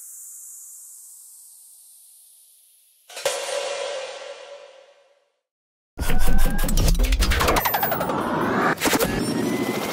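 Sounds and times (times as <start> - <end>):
high hiss: 0.0 - 3.1.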